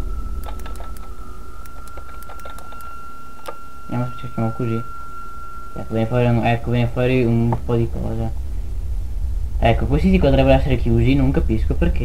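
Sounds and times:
high-pitched electrical whine: 0.0s - 12.0s
low hum: 0.0s - 12.0s
keyboard key clicks: 0.4s - 3.6s.

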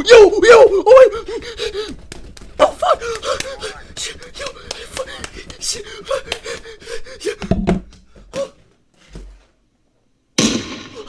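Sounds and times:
loud gunshot bang: 10.4s - 11.0s.

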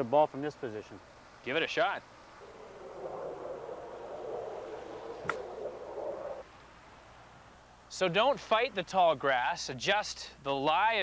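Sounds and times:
steady rushing noise: 2.2s - 6.5s
golf club chipping ball: 5.0s - 6.0s.

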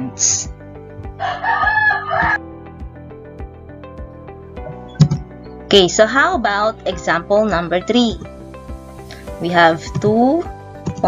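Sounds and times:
background music with steady beat: 0.0s - 11.0s
rooster crowing: 1.2s - 2.4s.

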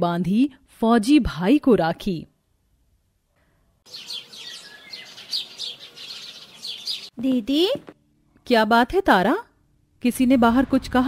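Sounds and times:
small birds chirping: 3.9s - 7.5s.

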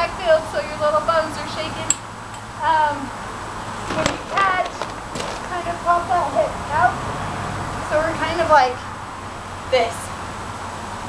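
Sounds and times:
sharp knock: 3.9s - 5.6s.

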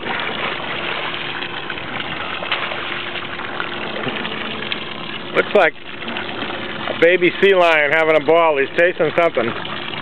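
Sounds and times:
boat engine idling: 0.0s - 10.0s
water noise: 0.0s - 10.0s.

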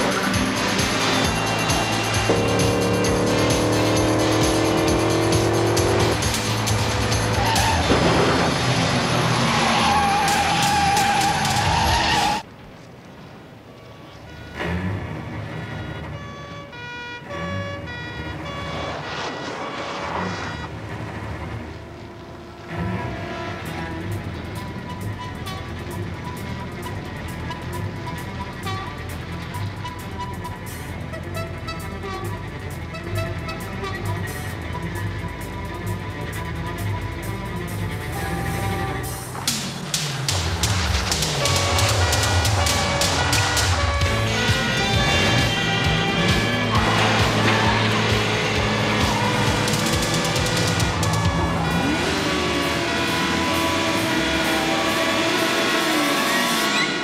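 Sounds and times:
background music: 0.0s - 12.4s, 22.2s - 57.0s
car engines revving: 0.0s - 57.0s
tyres squealing: 6.9s - 12.5s, 38.2s - 57.0s.

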